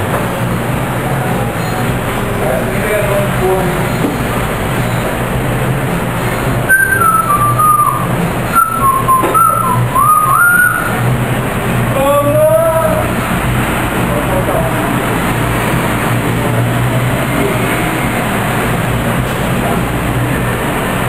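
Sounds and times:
person whistling a tune: 6.7s - 11.0s.

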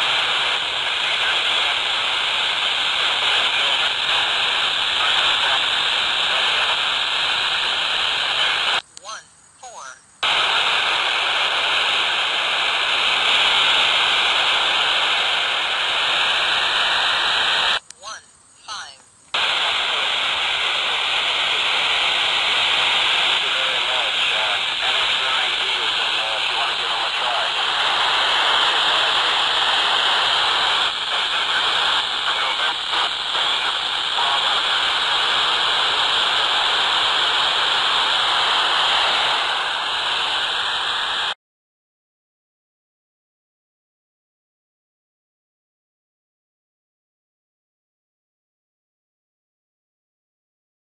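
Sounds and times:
radio static hiss: 0.0s - 41.4s
garbled voice over radio: 3.0s - 6.9s, 8.1s - 10.0s, 17.9s - 20.2s, 23.2s - 36.8s.

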